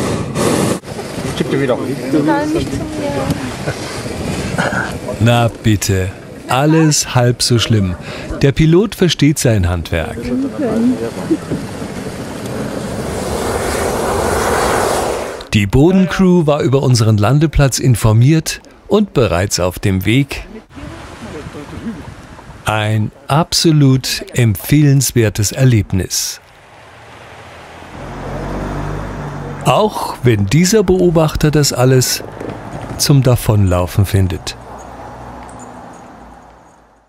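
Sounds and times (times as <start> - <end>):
propane burner roaring: 11.7 - 15.5.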